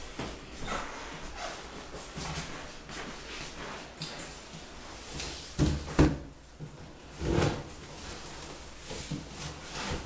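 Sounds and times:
things shuffled on floor: 0.0 - 10.0.

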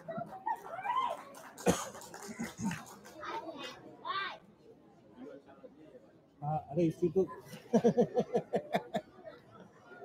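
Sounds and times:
audience talking quietly: 0.0 - 10.0
children's voices: 2.6 - 4.4.

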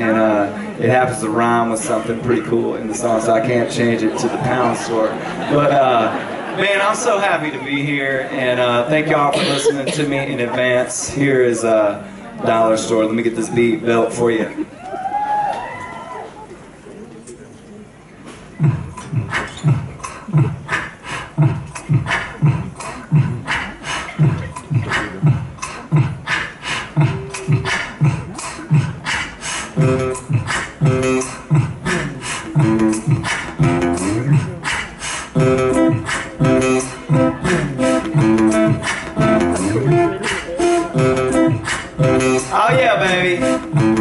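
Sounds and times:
beatboxed looping beat: 9.4 - 10.4, 18.4 - 44.0
acoustic guitar riff: 29.8 - 34.6, 35.3 - 44.0.

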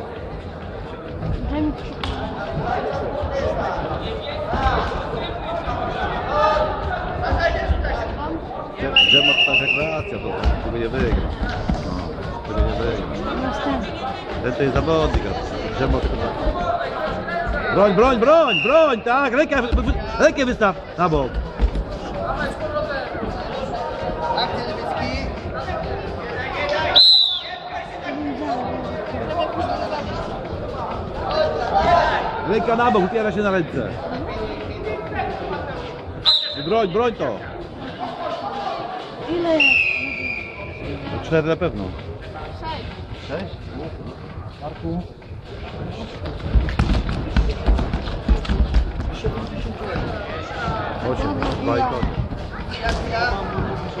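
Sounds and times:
voices in a hall: 0.0 - 54.0
referee's whistle blast: 8.9 - 10.2, 27.0 - 27.6, 36.2 - 36.8, 39.6 - 40.9.

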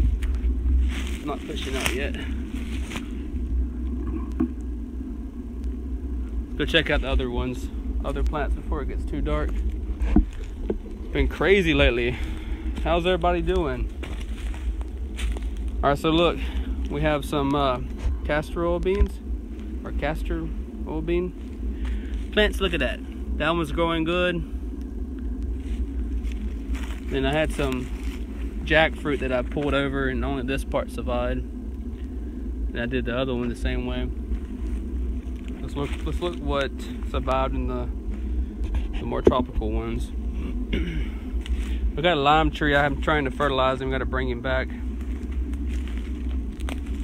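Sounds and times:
faint rustles: 0.0 - 23.5, 24.4 - 30.3, 31.1 - 43.7, 44.4 - 47.0
wind rumbling on microphone: 0.0 - 47.0.

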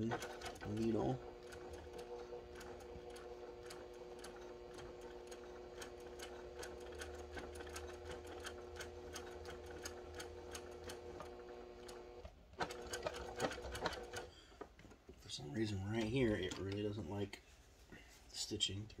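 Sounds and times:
sewing machine motor hum: 0.0 - 14.3
sewing machine needle strokes: 0.0 - 14.3.

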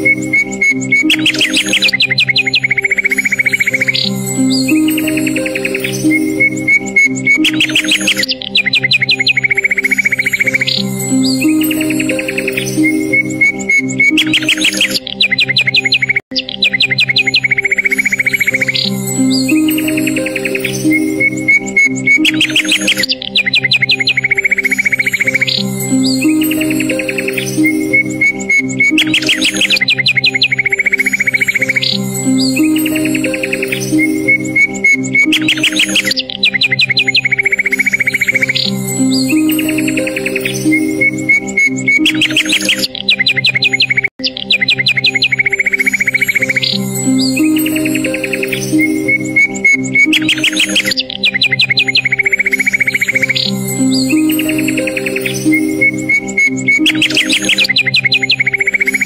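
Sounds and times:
birds trilling and chirping: 0.0 - 59.0
calm instrumental music: 0.0 - 59.0.

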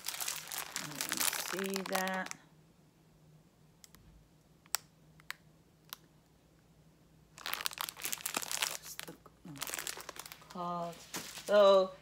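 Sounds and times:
plastic wrapping crinkling: 0.0 - 2.4, 7.4 - 11.8.

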